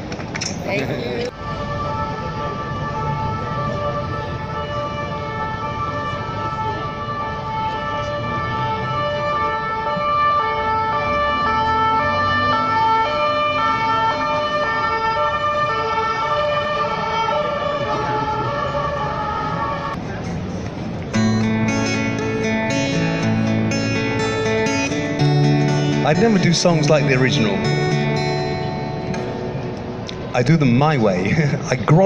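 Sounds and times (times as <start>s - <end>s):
city street traffic: 0.0s - 32.0s
two-tone siren: 1.3s - 20.0s, 21.2s - 30.0s.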